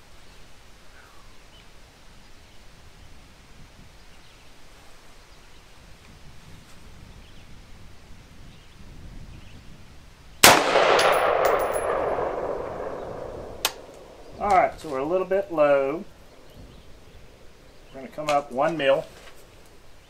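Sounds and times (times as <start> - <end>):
rifle shot: 10.4 - 14.4
sharp click: 13.6 - 14.1.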